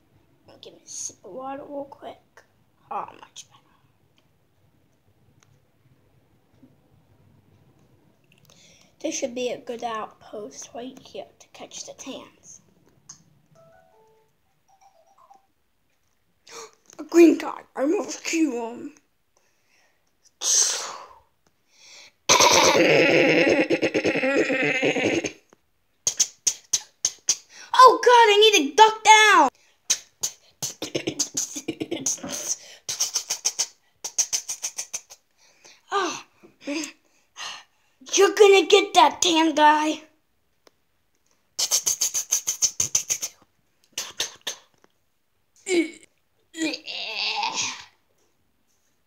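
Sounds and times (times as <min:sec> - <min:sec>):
person imitating machine-gun fire: 0:22.3 - 0:25.4
sharp mouth clicks: 0:26.0 - 0:27.5, 0:41.6 - 0:45.0.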